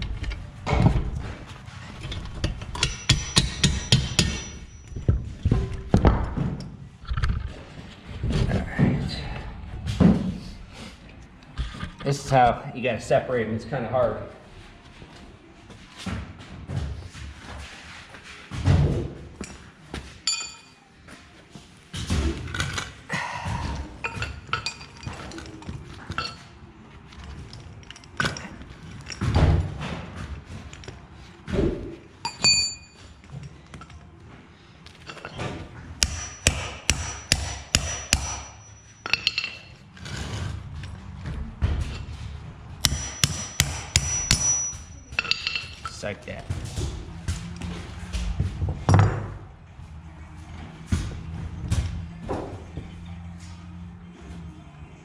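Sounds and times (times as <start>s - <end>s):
hammer striking steel chain: 2.4s - 5.2s, 20.2s - 20.8s, 32.2s - 33.1s, 36.0s - 40.3s, 42.8s - 46.0s.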